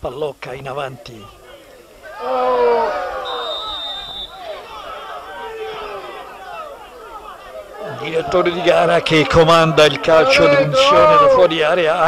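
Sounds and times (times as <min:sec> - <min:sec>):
players shouting in protest: 0:01.3 - 0:12.0
referee's whistle blast: 0:03.2 - 0:04.6.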